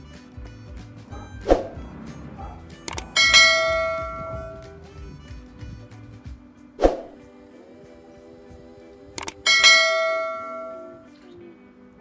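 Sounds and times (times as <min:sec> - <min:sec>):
background music: 0:00.0 - 0:12.0
click: 0:02.9 - 0:03.1, 0:09.2 - 0:09.4
bright bell ding: 0:03.2 - 0:04.6, 0:09.5 - 0:11.0.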